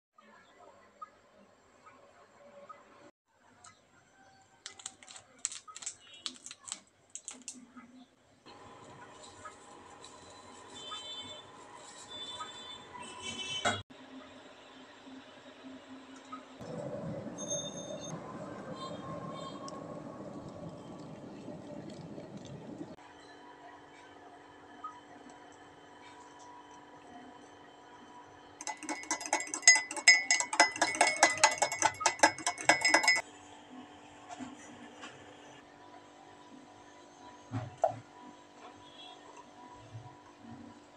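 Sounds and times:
clicks and light clinks: 0:28.6 - 0:33.2
spoon beating against mug: 0:28.6 - 0:33.2.

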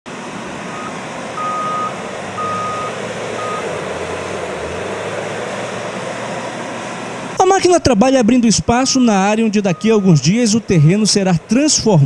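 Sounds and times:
diesel engine running: 0:00.1 - 0:12.0
reversing alarm beeping: 0:00.8 - 0:03.8, 0:09.5 - 0:10.9.

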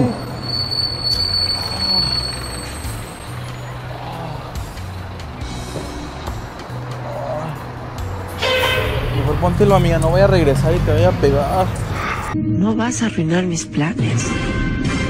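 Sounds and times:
bus engine hum: 0:00.0 - 0:12.4
street traffic: 0:00.0 - 0:12.4.

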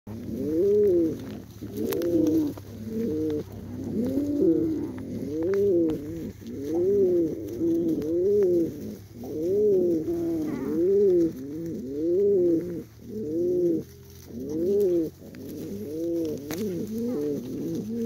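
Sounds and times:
pigeon cooing: 0:00.1 - 0:18.0.

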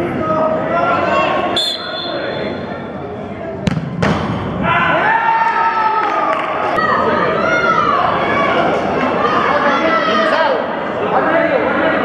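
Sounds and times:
voices in hall: 0:00.0 - 0:12.0
ball kicked thud: 0:03.6 - 0:04.4
ball hitting goal: 0:03.6 - 0:04.6.

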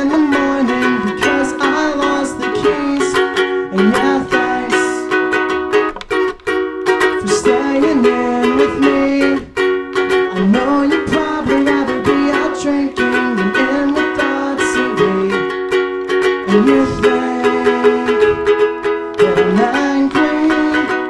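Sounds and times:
ukulele strummed: 0:00.0 - 0:21.0.

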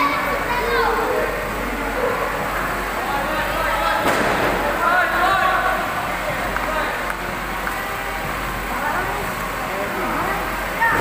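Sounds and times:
crowd talking: 0:00.0 - 0:11.0.

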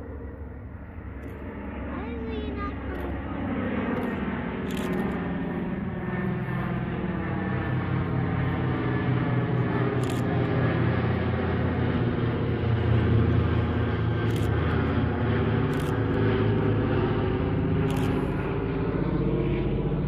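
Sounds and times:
aircraft piston engines droning: 0:00.0 - 0:20.0.

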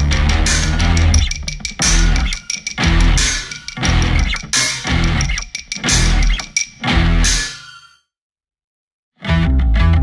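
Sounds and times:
noise-rock band music: 0:00.0 - 0:07.8, 0:09.2 - 0:10.0.

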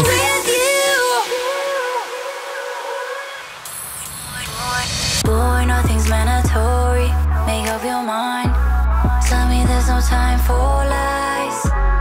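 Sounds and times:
synth noise hiss: 0:00.0 - 0:05.3
deep bass: 0:05.2 - 0:07.8, 0:08.4 - 0:12.0.

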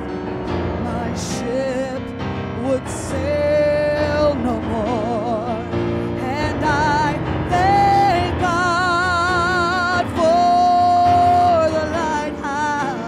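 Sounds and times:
person singing with vibrato: 0:00.0 - 0:13.0
band accompaniment: 0:04.0 - 0:13.0.

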